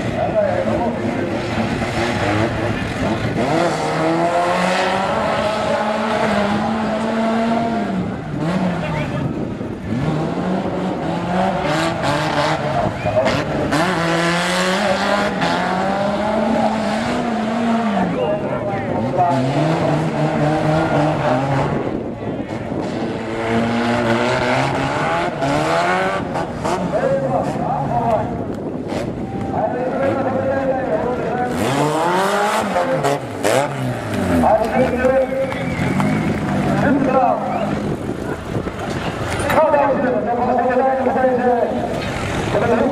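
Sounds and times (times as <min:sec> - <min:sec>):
car engines revving: 0:00.0 - 0:42.9.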